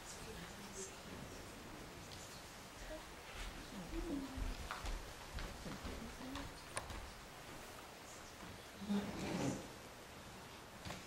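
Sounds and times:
footsteps on wooden stage: 3.3 - 7.6.

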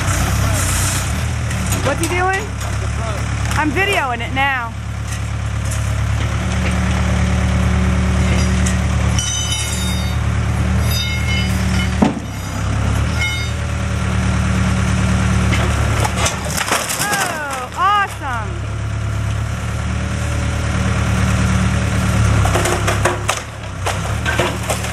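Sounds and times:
diesel engine running: 0.0 - 24.9
wood cracking and splintering: 15.5 - 18.3, 22.3 - 24.9.

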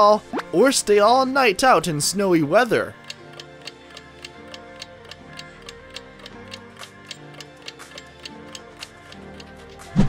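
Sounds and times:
light background music: 0.0 - 10.0
countdown clock ticking: 2.8 - 9.9.

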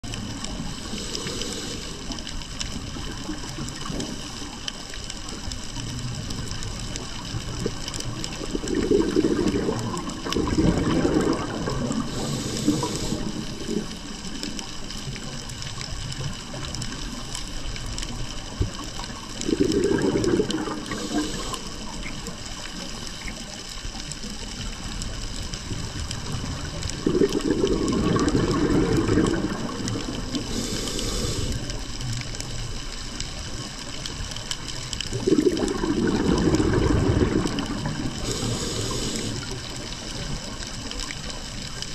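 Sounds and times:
hiss of inhaling: 0.5 - 2.4, 11.9 - 14.2, 20.7 - 22.2, 30.0 - 32.0, 38.1 - 40.3
bubbly diver exhalations: 7.5 - 14.3, 19.4 - 22.2, 26.9 - 31.7, 35.1 - 39.6.

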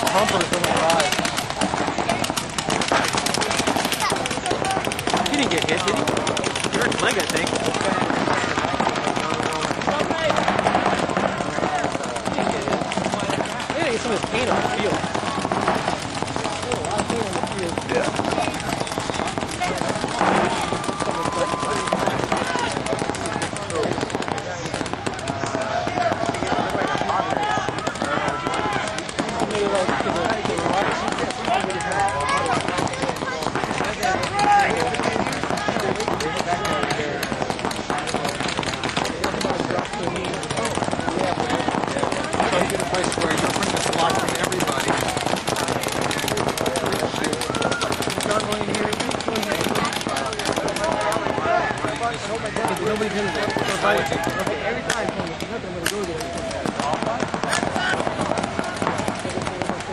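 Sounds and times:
paintball markers firing: 0.0 - 59.9
voices calling out: 0.0 - 59.9.

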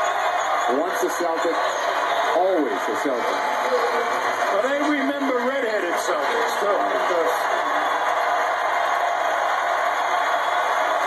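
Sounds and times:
arena crowd noise: 0.0 - 11.0
man talking: 4.5 - 7.6.

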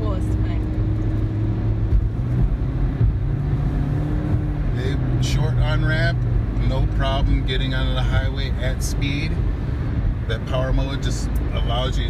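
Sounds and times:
car road noise rumble: 0.0 - 12.0.

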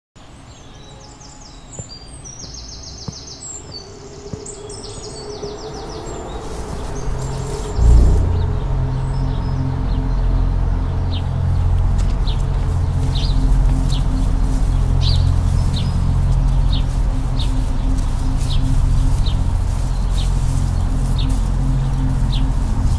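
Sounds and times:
birds chirping and trilling: 0.2 - 22.9
deep bass drone: 6.9 - 22.9.

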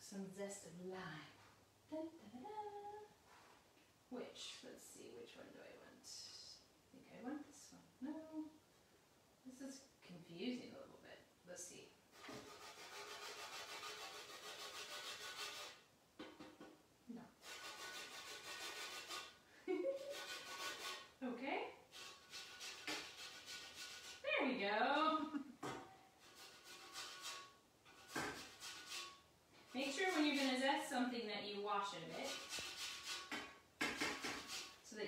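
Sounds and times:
lime scraped on a fine grater: 12.1 - 15.8, 17.4 - 21.2, 21.9 - 24.3, 26.2 - 31.0, 31.9 - 34.9.

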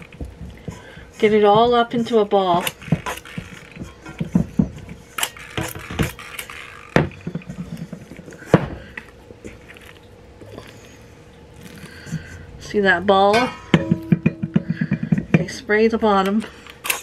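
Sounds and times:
metal bowl knocking and clinking: 13.3 - 15.6.

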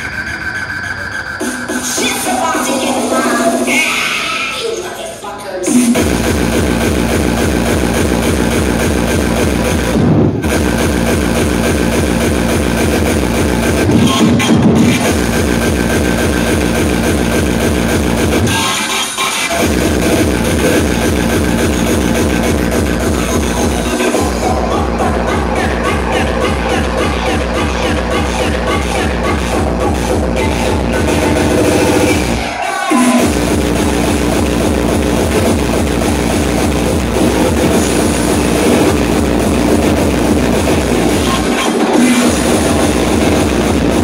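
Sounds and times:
electronic dance music: 0.0 - 44.0
steady kick drum: 5.7 - 18.5, 19.6 - 32.4, 33.1 - 44.0.

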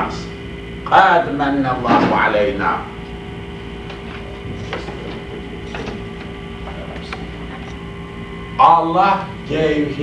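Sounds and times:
electrical hum: 0.0 - 10.0
tape background noise: 2.9 - 9.6.

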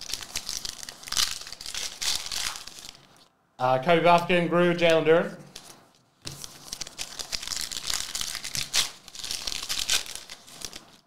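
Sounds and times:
foil wrapper tearing and crinkling: 0.0 - 3.3, 6.3 - 11.0.

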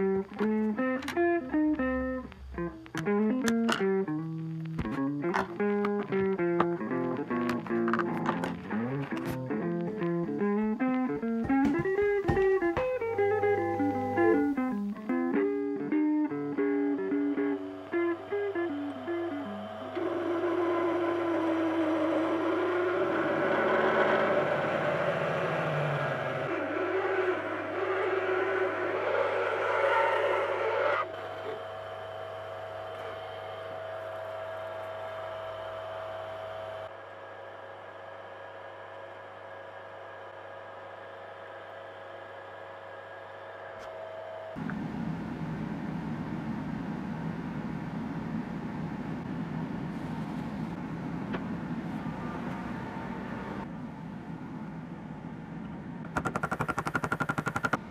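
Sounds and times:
guitar music: 0.0 - 20.0.

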